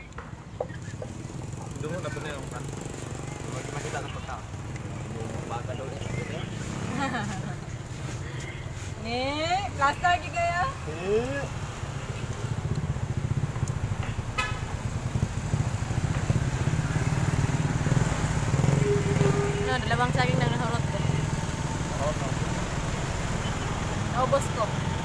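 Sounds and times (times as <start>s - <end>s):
horn toot: 18.6s - 20.0s.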